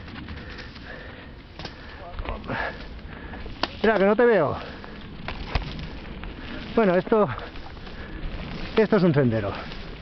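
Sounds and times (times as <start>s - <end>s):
mountain bike rustling on trail: 0.0s - 10.0s.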